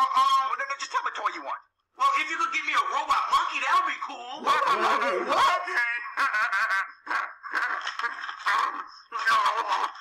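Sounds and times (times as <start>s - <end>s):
people laughing: 4.4s - 8.8s.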